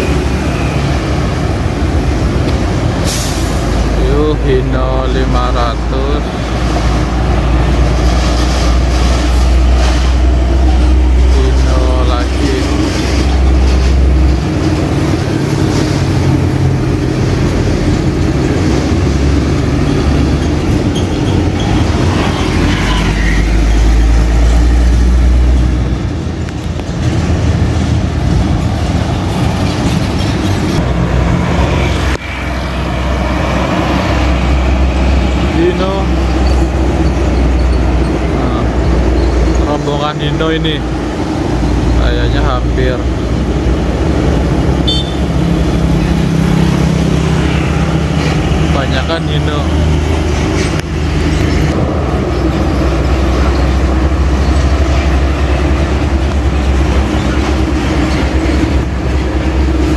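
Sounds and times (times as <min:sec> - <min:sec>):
heavy diesel trucks passing: 0:00.0 - 0:59.9
steady traffic noise: 0:00.0 - 0:59.9.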